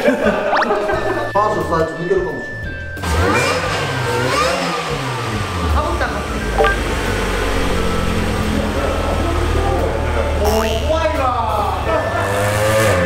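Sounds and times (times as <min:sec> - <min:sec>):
car engine revving: 0:03.0 - 0:11.2, 0:12.2 - 0:13.0.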